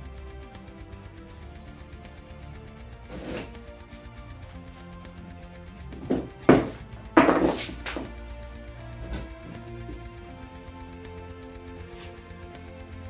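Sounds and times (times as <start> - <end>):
background guitar music: 0.0 - 13.0
metal scraping on wooden workbench: 3.1 - 3.6, 6.0 - 8.1.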